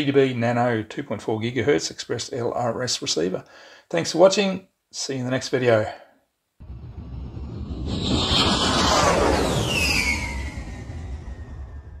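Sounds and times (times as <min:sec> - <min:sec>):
whoosh: 0:06.6 - 0:12.0
falling whistle-like tones: 0:06.8 - 0:12.0.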